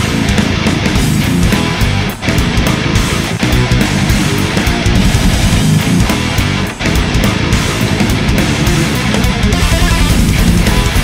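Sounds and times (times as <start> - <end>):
death metal band playing: 0.0 - 11.0
distorted electric guitar: 0.0 - 11.0.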